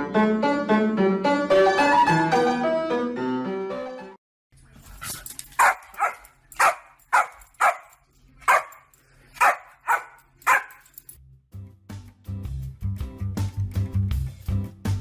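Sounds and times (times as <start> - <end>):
dog barking: 5.6 - 10.9.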